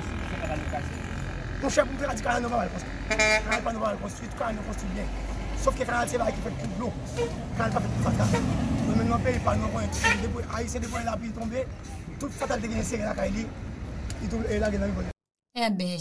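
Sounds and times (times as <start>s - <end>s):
vehicle horn toot: 3.1s - 3.9s, 10.0s - 10.3s.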